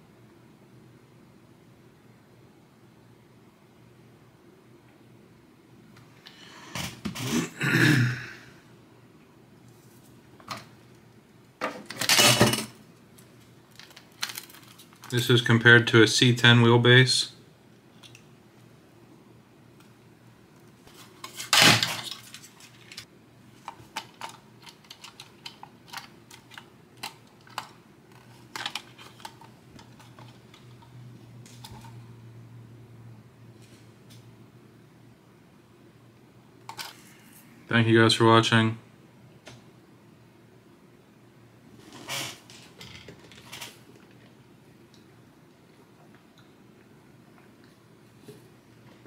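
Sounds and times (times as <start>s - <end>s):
man's rough throat sounds: 7.2s - 8.5s.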